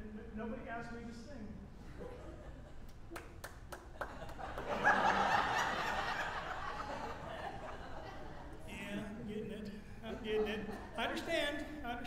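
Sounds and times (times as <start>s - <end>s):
laughter: 1.8s - 3.2s, 3.9s - 9.3s, 10.0s - 11.5s
sharp hand claps: 2.9s - 4.7s.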